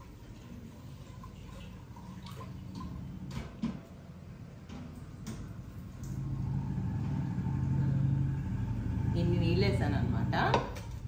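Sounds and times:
low motor hum: 1.2s - 11.0s.

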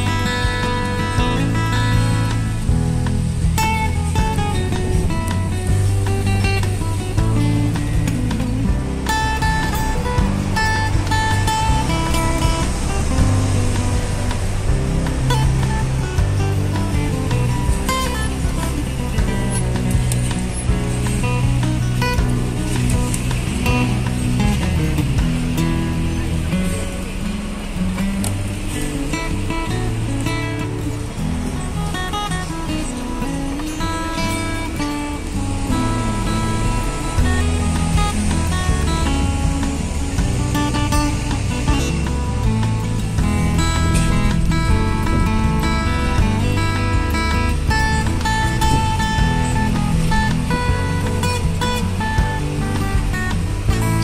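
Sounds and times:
background music with plucked guitar: 0.0s - 54.0s.

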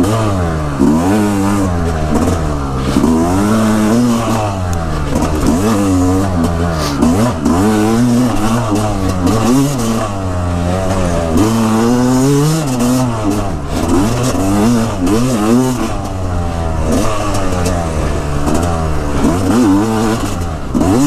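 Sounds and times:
dirt bike engine revving: 0.0s - 21.0s.

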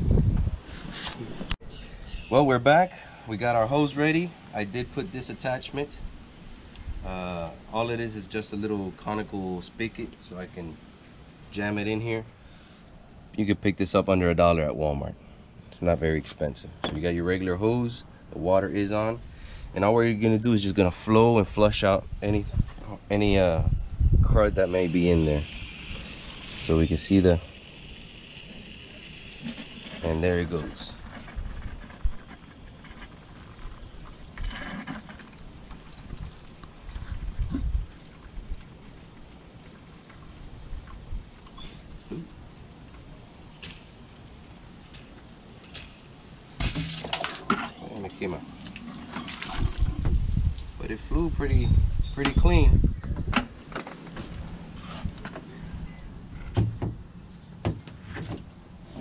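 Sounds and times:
steady low hum: 3.0s - 34.4s
water splashing into bucket: 24.7s - 41.5s, 46.6s - 50.1s.

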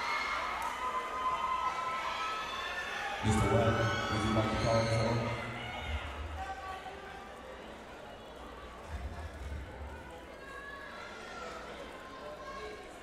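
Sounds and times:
faint chatter of voices: 2.4s - 13.0s.

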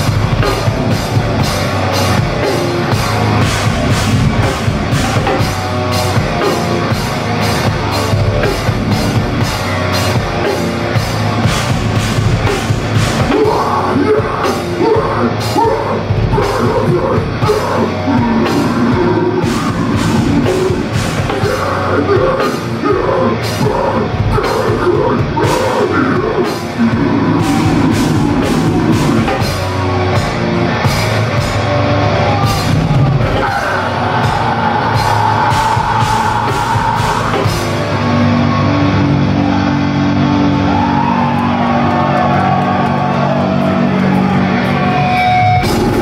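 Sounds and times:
drum kit with crashing accents: 0.0s - 39.3s, 45.4s - 46.0s
bass guitar: 0.0s - 46.0s
distorted guitars: 0.0s - 46.0s
heavy metal band playing live: 0.0s - 46.0s.

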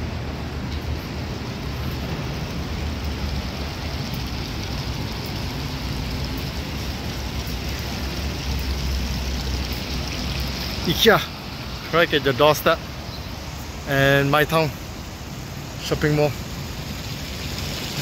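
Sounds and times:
water rushing and splashing: 0.0s - 18.0s.

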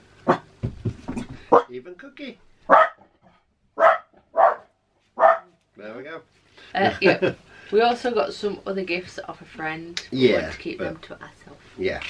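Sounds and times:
dog barking: 1.5s - 1.7s, 2.7s - 3.1s, 3.8s - 5.5s.

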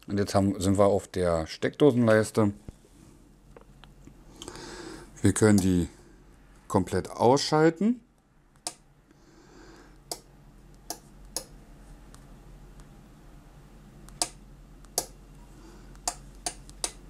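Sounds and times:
faint steady hum: 0.0s - 17.0s
sharp clicks: 14.0s - 15.2s, 15.9s - 17.0s.

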